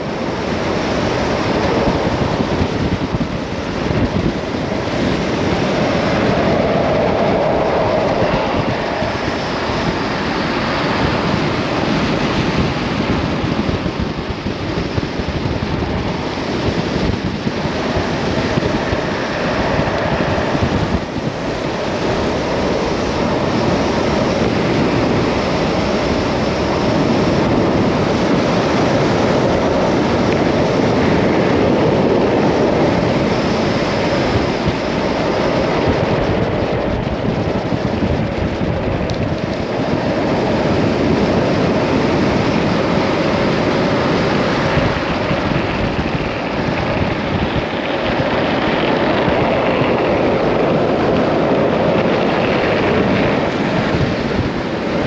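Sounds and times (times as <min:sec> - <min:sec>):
wheels rolling on asphalt: 0:00.0 - 0:55.0
wind buffeting microphone: 0:00.0 - 0:55.0.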